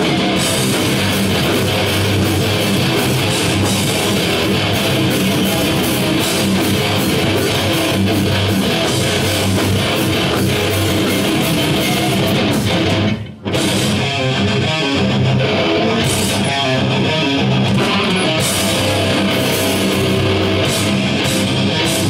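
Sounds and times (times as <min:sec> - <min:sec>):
bass guitar: 0:00.0 - 0:22.0
distorted electric guitars: 0:00.0 - 0:22.0
drums: 0:00.0 - 0:22.0.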